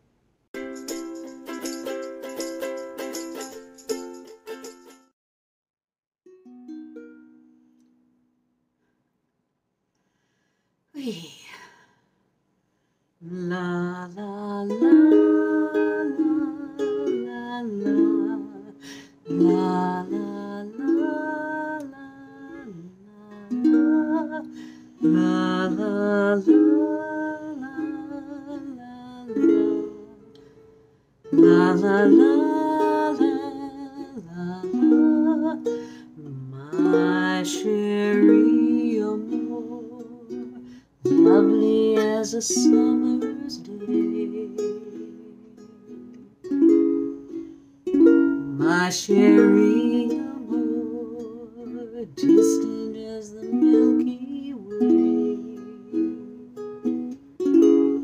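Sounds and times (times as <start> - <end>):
strummed plucked-string jingle: 0.6 - 5.0
ukulele strumming: 0.6 - 5.1, 6.3 - 8.1, 13.8 - 30.5, 31.2 - 58.0
woman singing held note: 11.0 - 11.9.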